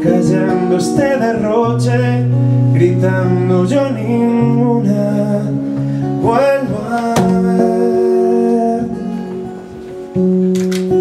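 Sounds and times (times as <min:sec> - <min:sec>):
man singing: 0:00.0 - 0:09.8
acoustic guitar strumming: 0:00.0 - 0:11.0.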